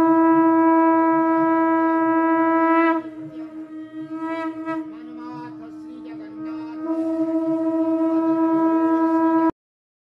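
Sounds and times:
conch shell blown: 0.0 - 9.6.

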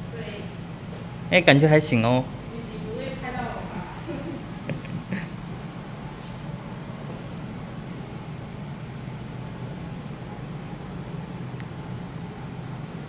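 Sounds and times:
ventilation hum: 0.0 - 13.0.

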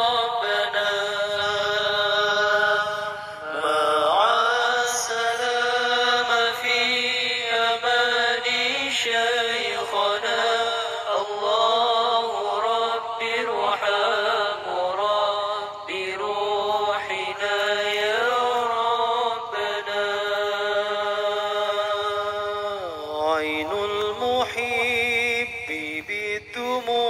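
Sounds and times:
person chanting ornamented notes: 0.0 - 27.0.

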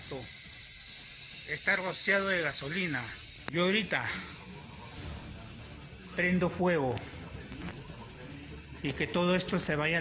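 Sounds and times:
room background noise: 0.0 - 10.0.

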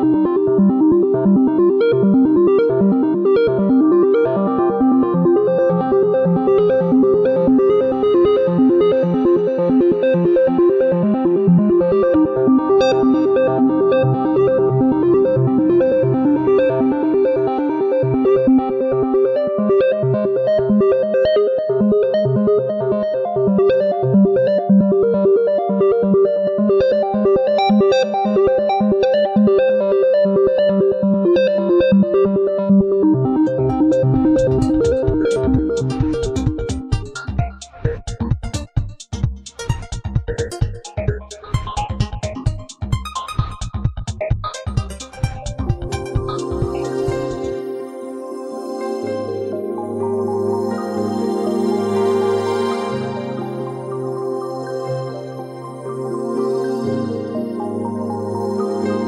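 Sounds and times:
sustained synthesizer chords: 0.0 - 25.0, 44.7 - 59.0
synthesizer pulsing pattern: 0.0 - 59.0.

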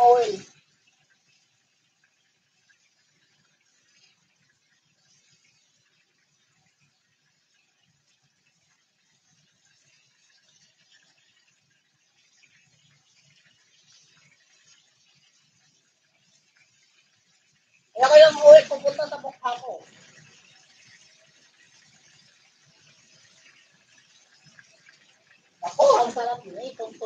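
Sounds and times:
food frying in oil: 0.0 - 27.0.

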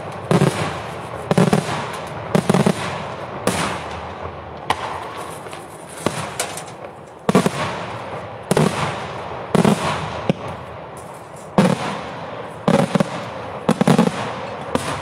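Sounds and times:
firework shell bursts: 0.0 - 8.0.

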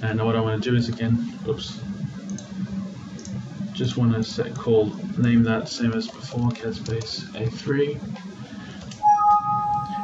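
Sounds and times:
low steady hum: 0.0 - 10.0
faint computer mouse clicks: 3.2 - 3.4.

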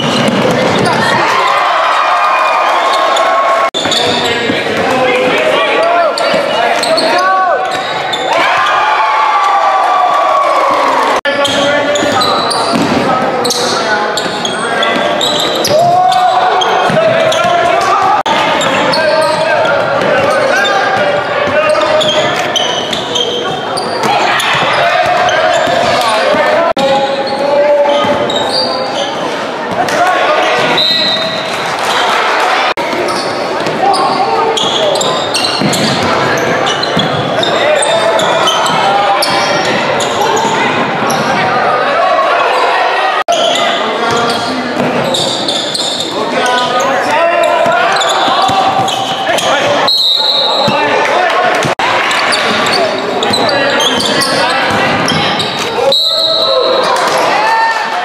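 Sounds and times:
ball bouncing on hardwood court: 0.0 - 1.0, 11.5 - 13.2, 35.5 - 37.3
crowd voices and shouting: 0.0 - 58.0.

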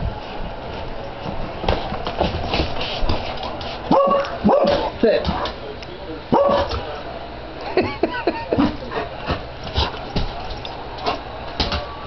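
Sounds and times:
dog barking: 3.9 - 4.9, 6.3 - 6.8.

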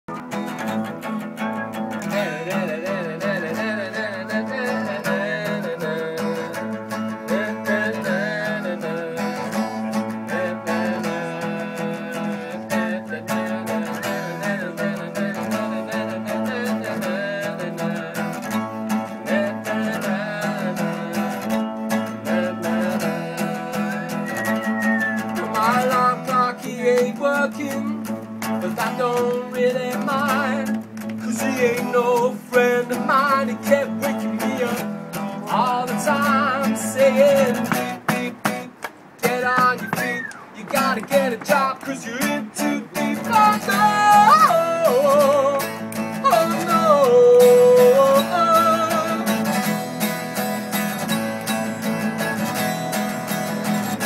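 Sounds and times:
acoustic guitar strumming: 0.0 - 54.0
wordless voice singing: 1.6 - 49.7.

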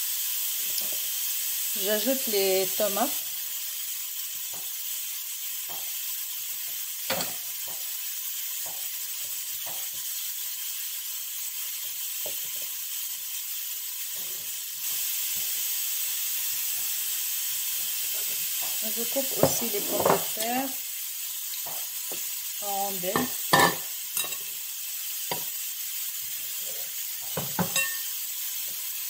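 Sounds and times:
steady hiss: 0.0 - 29.0.

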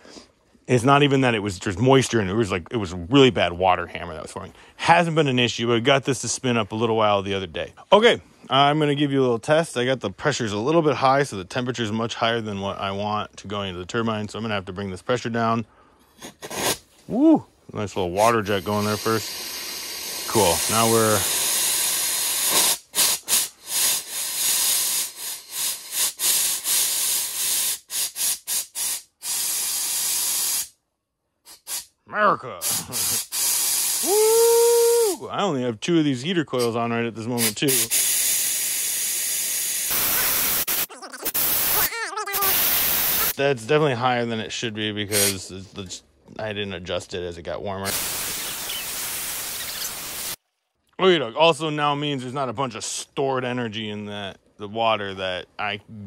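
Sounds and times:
steam hissing from valve: 18.2 - 30.8, 31.5 - 31.9, 32.6 - 35.2, 37.4 - 43.4, 45.1 - 45.4, 47.9 - 50.4.

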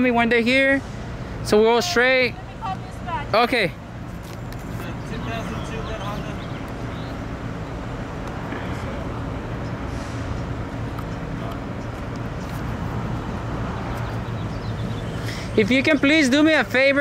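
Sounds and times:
distant indistinct voices: 0.0 - 17.0.

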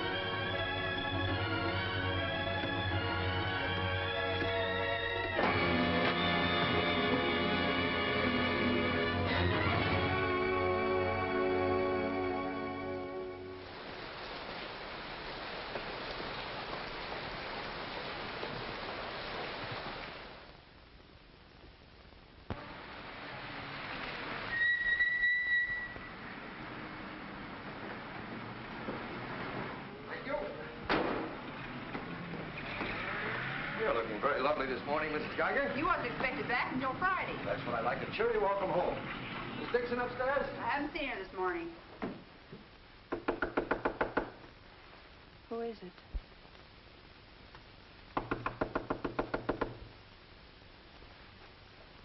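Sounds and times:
steady high whistle: 24.5 - 26.2
rapid knocking on door: 43.1 - 44.4, 48.2 - 49.9.

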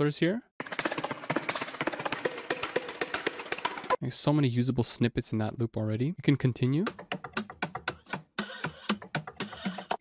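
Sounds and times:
percussion loop of dry clicks: 0.6 - 4.0, 6.9 - 10.0.

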